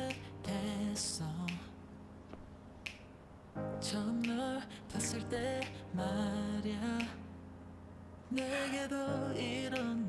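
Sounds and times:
finger snaps: 0.0s - 0.4s, 1.4s - 3.2s, 4.2s - 6.0s, 6.9s - 7.3s, 8.3s - 8.9s, 9.7s - 10.0s
sung vocal: 0.0s - 2.0s, 3.7s - 7.6s, 8.3s - 10.0s
soft pop song: 0.0s - 10.0s.

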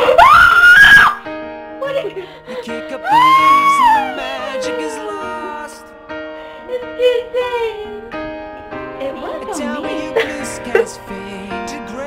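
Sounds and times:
girl screaming: 0.0s - 1.2s, 3.0s - 5.8s
background music: 0.0s - 12.0s.

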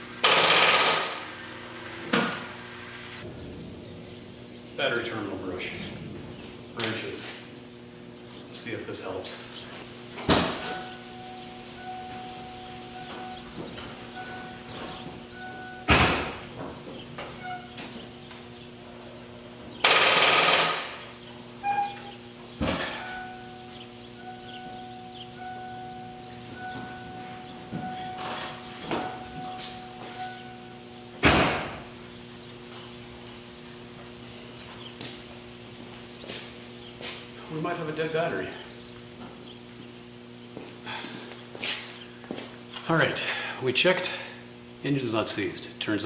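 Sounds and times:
steady low hum: 0.0s - 46.0s
footsteps on concrete floor: 32.2s - 37.4s, 39.2s - 42.8s.

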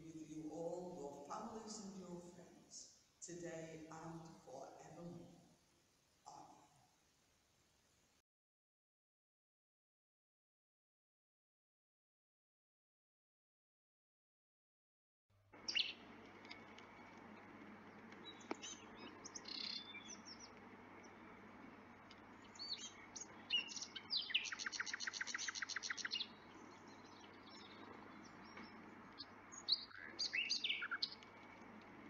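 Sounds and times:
songbirds chirping: 0.0s - 6.8s, 15.6s - 32.0s
faint low hum: 0.0s - 8.2s, 15.4s - 32.0s
bird trill: 15.6s - 17.2s, 17.8s - 31.6s.

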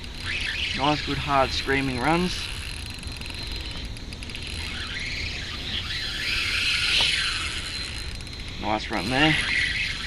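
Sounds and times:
fishing reel drag screaming: 0.0s - 10.0s.

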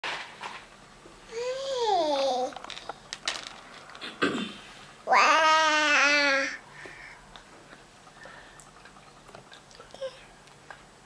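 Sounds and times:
baby cooing: 5.1s - 6.6s.

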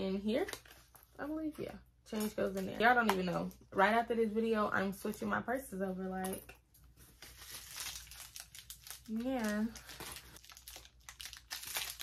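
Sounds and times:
packaging crinkling: 7.1s - 12.0s.

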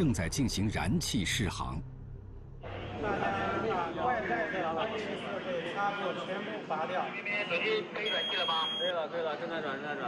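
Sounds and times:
men talking: 2.6s - 10.0s.

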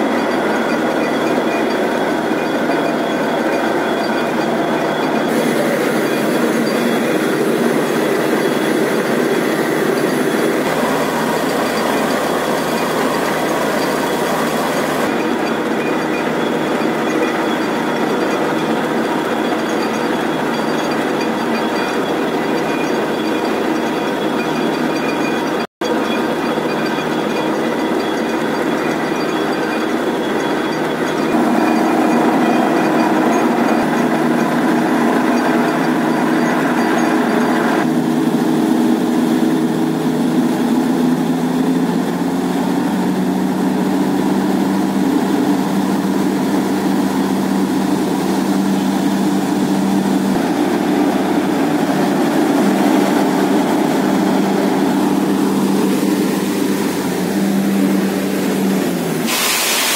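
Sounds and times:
drilling rig droning: 0.0s - 59.9s.

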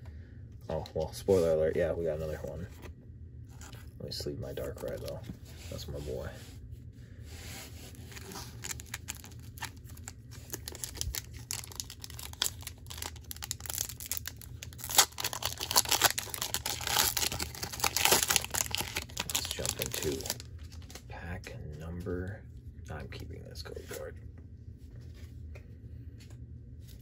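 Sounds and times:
foil wrapper crinkling and tearing: 8.0s - 21.0s.

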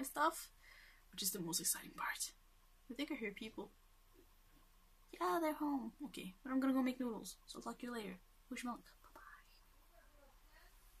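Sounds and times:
faint distant voices: 9.1s - 11.0s.

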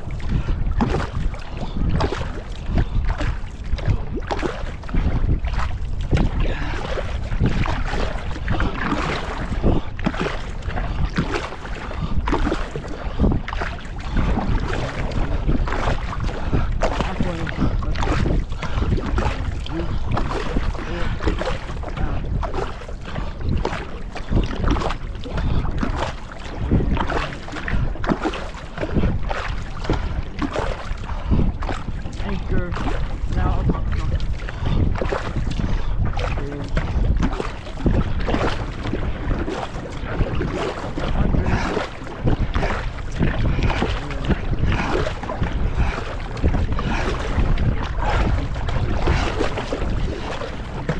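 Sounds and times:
paddles splashing in water: 0.0s - 50.9s
water rushing along hull: 0.0s - 50.9s
wind buffeting microphone: 0.0s - 50.9s.

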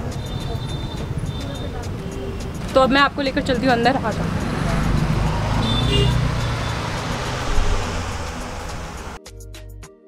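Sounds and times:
rushing noise with low rumble: 0.8s - 9.2s.

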